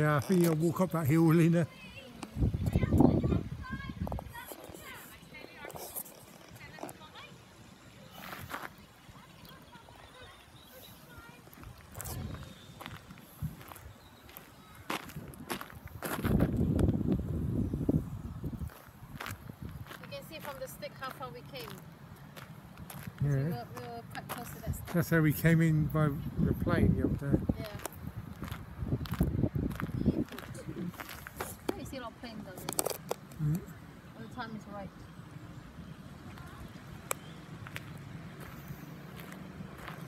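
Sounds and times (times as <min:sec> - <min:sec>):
people talking indistinctly: 0:00.0 - 0:12.8, 0:29.7 - 0:35.1
footsteps on gravel: 0:08.2 - 0:10.1, 0:11.2 - 0:16.8, 0:18.6 - 0:25.1, 0:27.6 - 0:33.3, 0:37.2 - 0:40.0.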